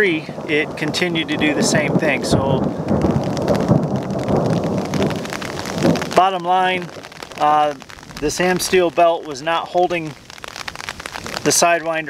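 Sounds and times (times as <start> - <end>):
rain on a fabric umbrella: 0.0 - 12.0.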